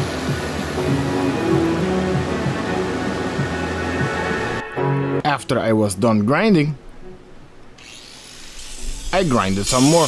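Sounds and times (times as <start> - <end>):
angle grinder grinding metal: 7.8 - 10.0.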